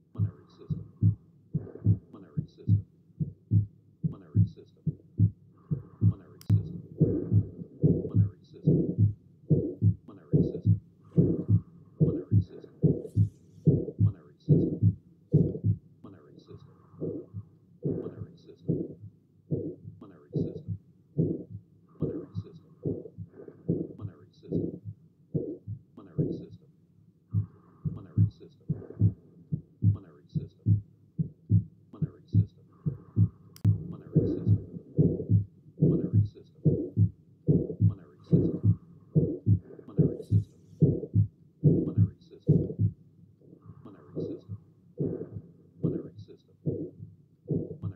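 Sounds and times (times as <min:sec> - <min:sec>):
heartbeat thumps: 0:00.0 - 0:15.9, 0:16.9 - 0:26.6, 0:27.3 - 0:43.0, 0:43.7 - 0:47.9
heart murmur: 0:00.0 - 0:26.6, 0:27.3 - 0:47.9.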